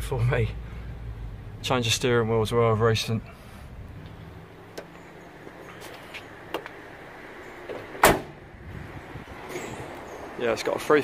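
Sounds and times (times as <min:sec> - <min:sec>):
truck door slamming: 0:07.6 - 0:08.5.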